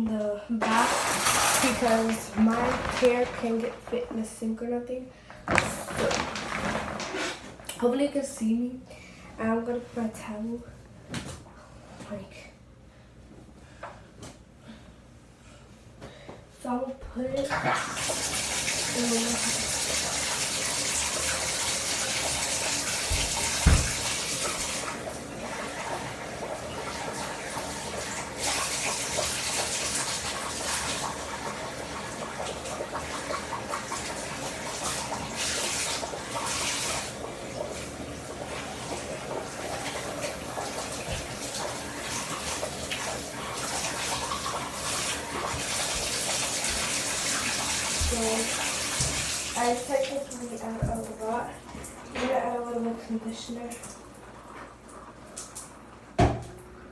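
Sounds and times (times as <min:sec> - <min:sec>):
water running from bathtub faucet: 0:00.6 - 0:04.5, 0:05.4 - 0:07.9, 0:17.2 - 0:56.9.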